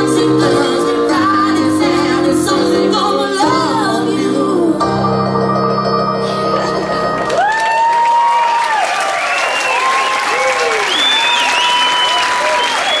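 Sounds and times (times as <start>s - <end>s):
audience applauding and cheering: 7.0s - 13.0s.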